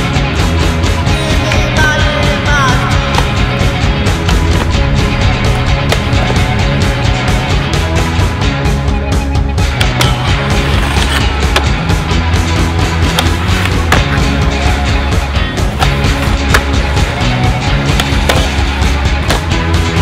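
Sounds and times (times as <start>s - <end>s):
hard rock music: 0.0s - 20.0s
skateboard wheels rolling on concrete: 2.3s - 20.0s
skateboard clacking: 3.0s - 3.4s, 9.7s - 11.9s, 12.9s - 14.4s, 15.7s - 19.5s.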